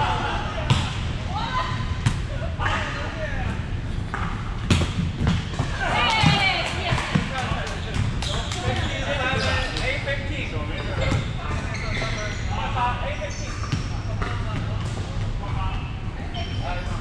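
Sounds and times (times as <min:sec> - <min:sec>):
players' voices: 0:05.3 - 0:17.0.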